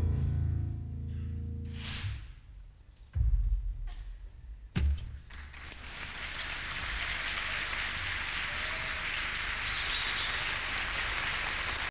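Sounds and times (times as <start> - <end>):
audience applause: 5.3 - 11.9.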